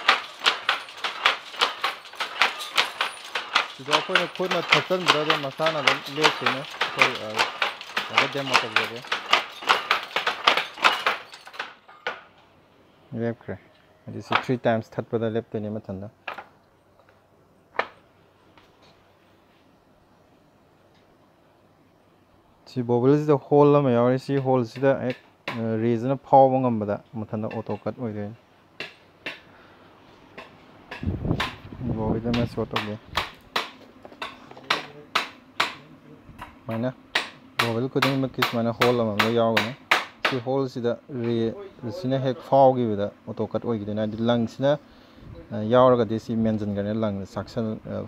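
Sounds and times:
powerloom clacking: 0.0s - 12.3s, 32.2s - 42.4s
sharp knocks: 0.0s - 12.3s, 30.4s - 31.7s, 32.3s - 40.5s.

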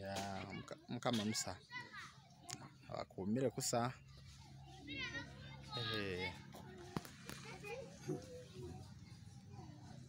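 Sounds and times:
children calling in background: 0.1s - 10.0s.

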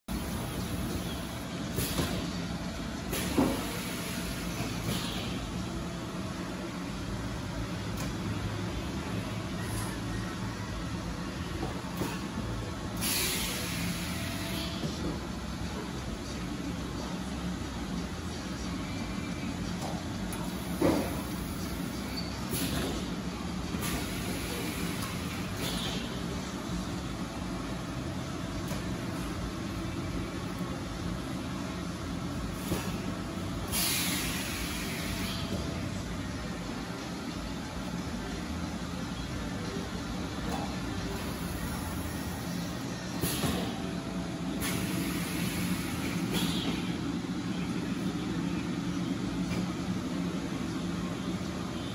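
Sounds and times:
air hissing: 0.1s - 2.3s, 3.1s - 5.4s, 13.0s - 14.8s, 20.4s - 23.1s, 23.8s - 26.1s, 32.5s - 35.6s, 41.2s - 43.8s, 44.6s - 47.0s.

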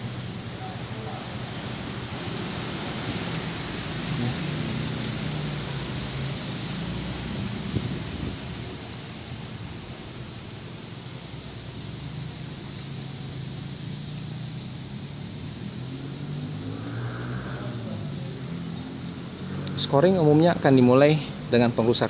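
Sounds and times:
traffic engine hum: 0.0s - 22.0s.

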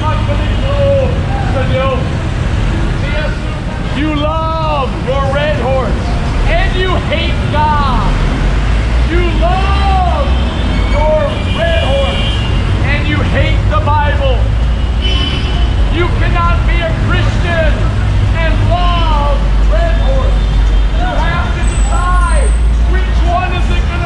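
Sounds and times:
man shouting: 0.0s - 2.1s, 9.1s - 12.3s, 15.9s - 17.8s, 18.4s - 24.0s
low rumble of traffic: 0.0s - 24.0s.

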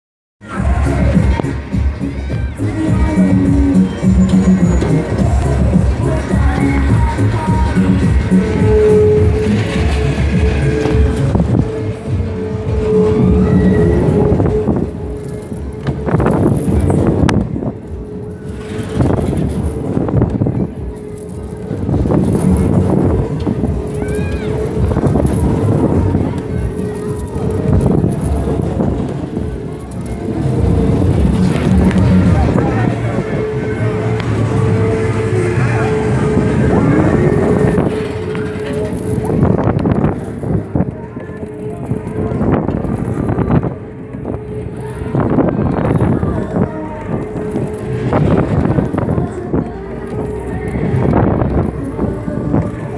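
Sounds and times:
loud fairground music: 0.4s - 52.9s
wind on microphone: 2.7s - 52.9s.

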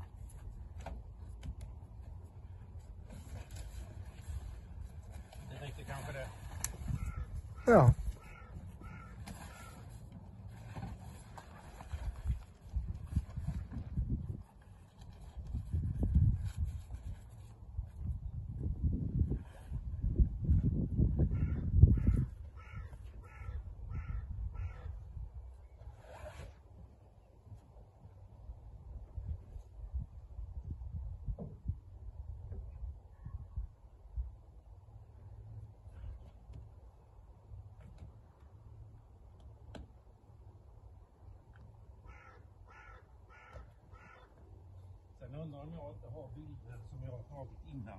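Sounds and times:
bird calling: 6.9s - 9.9s, 42.0s - 44.4s
crow cawing: 7.0s - 9.8s, 21.4s - 24.9s, 42.0s - 44.4s.

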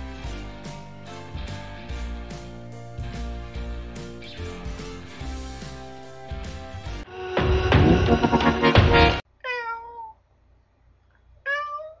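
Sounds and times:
cat meowing: 9.4s - 10.2s, 11.4s - 12.0s.

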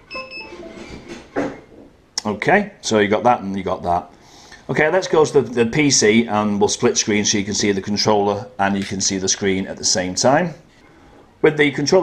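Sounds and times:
electronic beeps stepping in pitch: 0.0s - 0.9s.

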